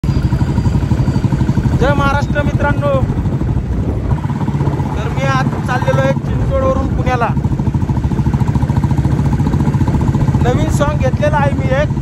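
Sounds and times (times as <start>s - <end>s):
motorcycle engine running: 0.0s - 12.0s
man speaking: 1.8s - 3.1s, 4.9s - 7.5s, 10.4s - 12.0s.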